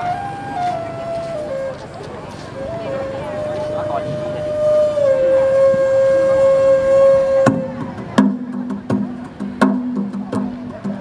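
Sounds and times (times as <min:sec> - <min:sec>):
wind instrument long note: 0:00.0 - 0:08.0.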